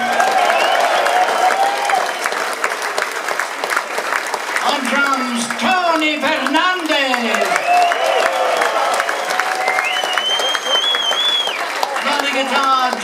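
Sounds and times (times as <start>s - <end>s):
audience applauding: 0.0s - 13.0s
shrill crowd whistles: 0.1s - 2.4s, 7.5s - 12.5s.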